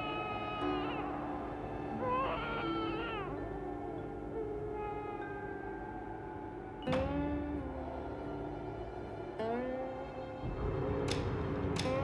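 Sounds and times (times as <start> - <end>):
child wailing: 0.0 - 3.7, 4.4 - 6.1
sustained music tones: 0.0 - 12.0.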